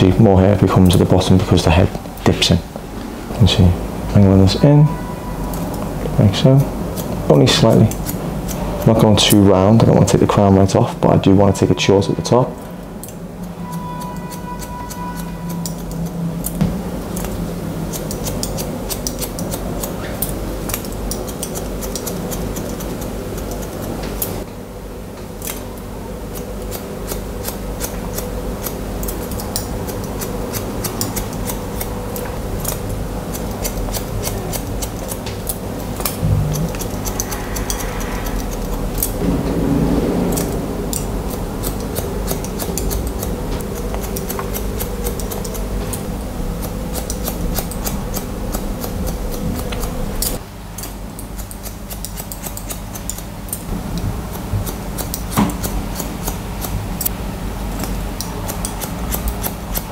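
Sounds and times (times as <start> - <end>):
steady low hum: 0.0 - 59.9
scissors snipping hair: 5.5 - 9.4, 13.0 - 24.4, 25.4 - 25.6, 26.3 - 39.2, 40.3 - 53.7, 54.6 - 59.9.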